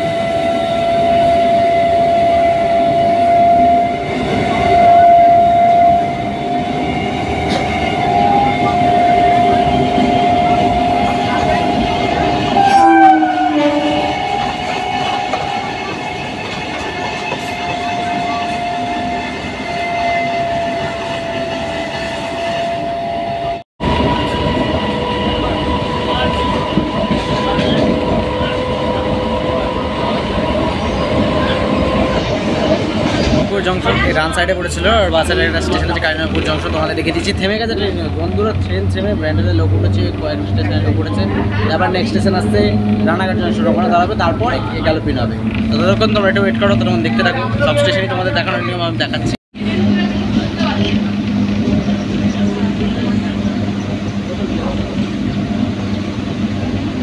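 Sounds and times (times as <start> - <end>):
electric train whine: 0.0 - 57.0
passing train: 0.0 - 57.0
train wheel and rail noise: 0.0 - 57.0.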